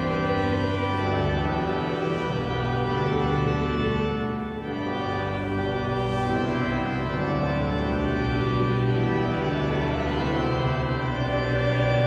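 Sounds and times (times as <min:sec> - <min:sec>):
pipe organ chords: 0:00.0 - 0:12.0.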